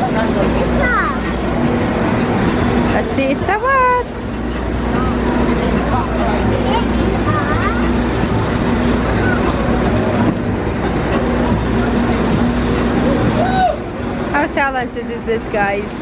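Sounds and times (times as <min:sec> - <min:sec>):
bus engine idling: 0:00.0 - 0:16.0
street traffic: 0:00.0 - 0:16.0.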